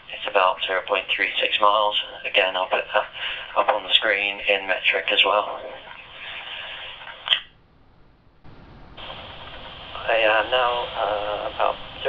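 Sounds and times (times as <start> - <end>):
walkie-talkie radio hiss: 0.0 - 7.4, 8.6 - 12.0.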